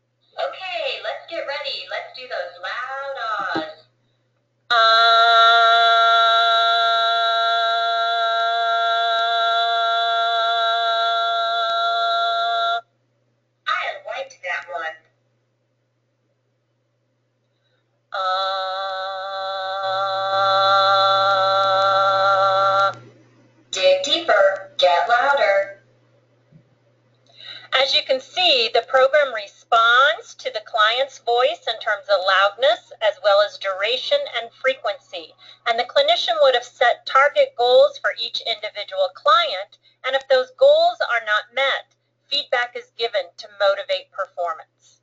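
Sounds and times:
faint low hum: 0.0s - 45.0s
person speaking high-pitched: 0.4s - 3.8s, 23.8s - 25.8s
person holding loud ah vowel: 4.7s - 12.8s, 18.2s - 23.1s.

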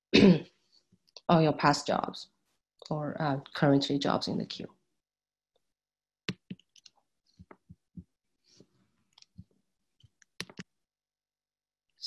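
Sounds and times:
computer mouse and keyboard clicks: 6.3s - 7.8s, 10.1s - 10.7s.

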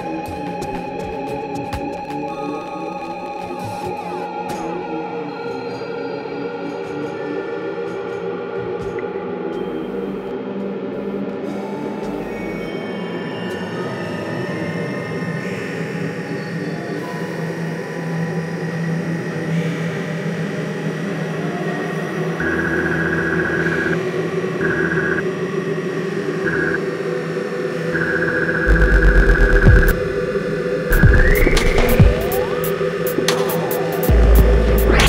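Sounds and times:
droning electronic hum: 26.1s - 35.0s
loud low throb: 28.6s - 35.0s.

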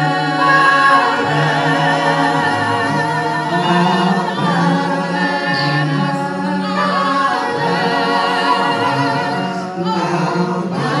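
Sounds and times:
gospel choir singing a cappella: 0.0s - 11.0s.

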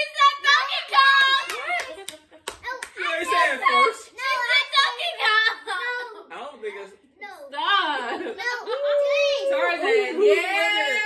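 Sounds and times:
hand claps: 1.0s - 3.1s.

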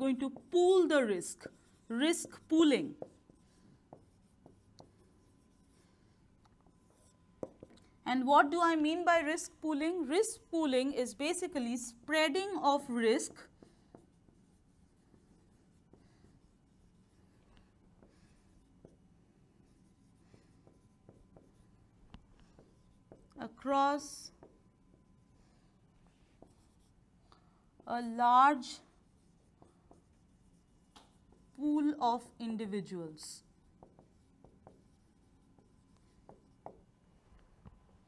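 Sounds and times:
marker strokes on a whiteboard: 0.0s - 38.0s.

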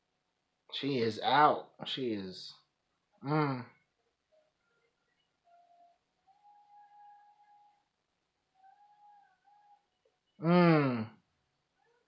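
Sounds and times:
faint held high tones: 4.3s - 11.1s.

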